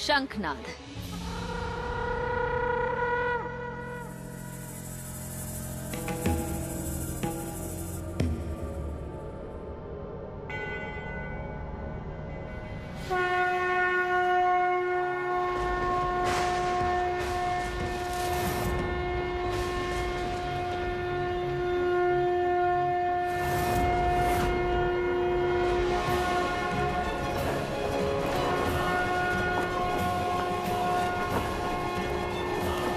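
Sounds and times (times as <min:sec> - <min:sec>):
conch shell blown: 0:13.1 - 0:32.9.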